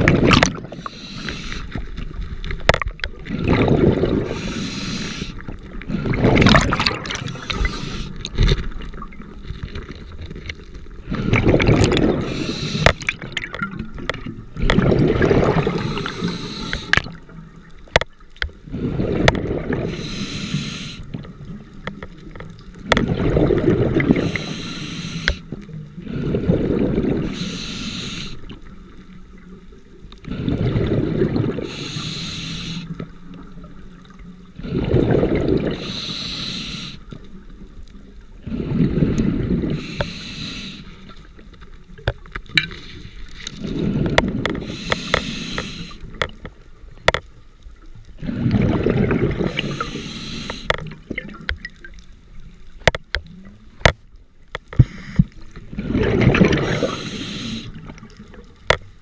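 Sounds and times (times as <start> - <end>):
diver exhaling bubbles: 0.0 - 1.9, 3.2 - 5.2, 5.8 - 8.4, 11.1 - 13.6, 14.6 - 17.3, 23.0 - 24.9, 34.6 - 36.9, 48.2 - 51.7, 55.1 - 58.1
short high regulator hiss: 27.4 - 28.4, 31.7 - 32.9.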